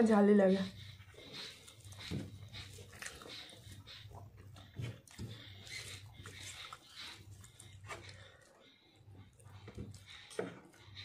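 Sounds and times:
steady low hum: 0.0s - 11.0s
chewing and mouth noises: 1.0s - 11.0s.

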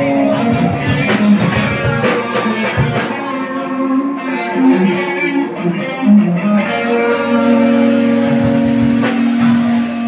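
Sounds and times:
live rock band: 0.0s - 10.0s
sustained electric guitar note: 0.0s - 10.0s.

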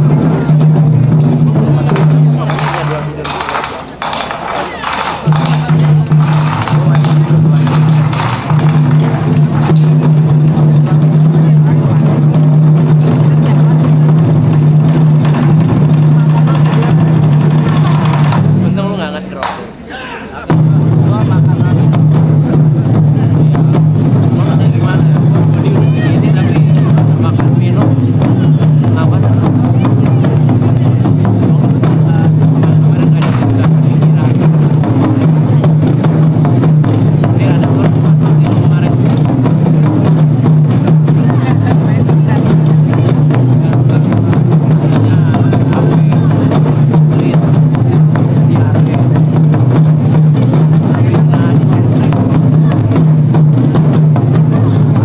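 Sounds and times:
taiko drums playing loudly: 0.0s - 19.8s, 20.5s - 55.0s.

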